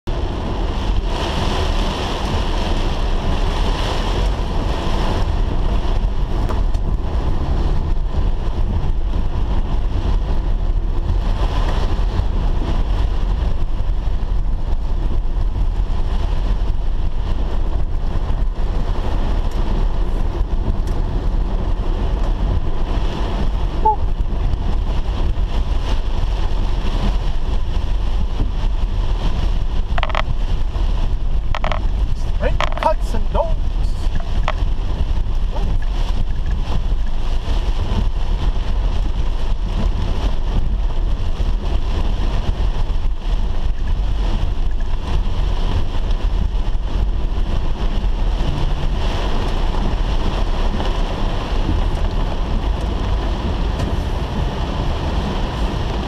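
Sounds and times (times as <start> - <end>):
road and engine rumble: 0.0 - 56.0
rain on windscreen: 0.1 - 56.0.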